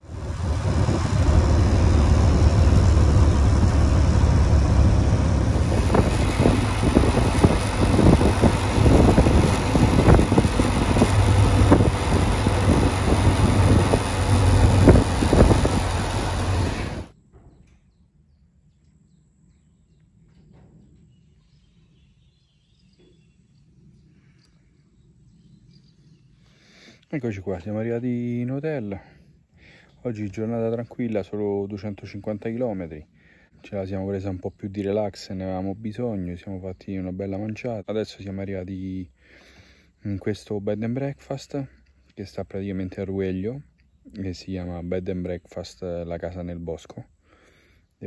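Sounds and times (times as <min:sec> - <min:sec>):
motorcycle engine: 0:00.0 - 0:17.2
wind buffeting microphone: 0:00.1 - 0:17.1.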